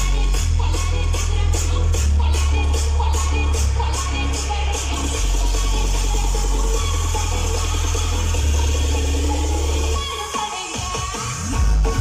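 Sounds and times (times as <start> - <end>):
loud dance music with heavy bass: 0.0 - 12.0.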